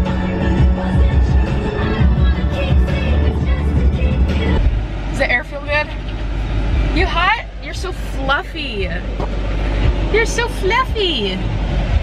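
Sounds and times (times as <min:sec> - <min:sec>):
low rumble inside car cabin: 0:00.0 - 0:12.0.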